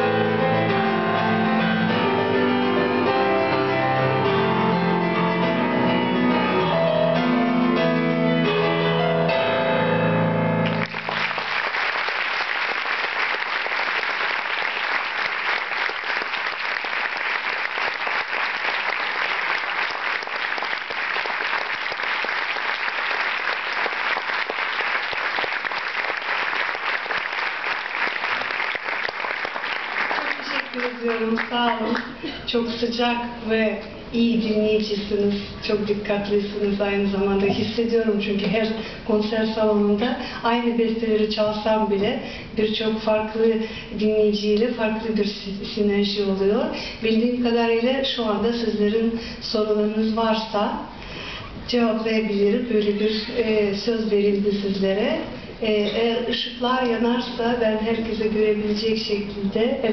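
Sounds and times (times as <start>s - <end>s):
solo grand piano: 0.0s - 11.4s
audience applause: 10.6s - 32.2s.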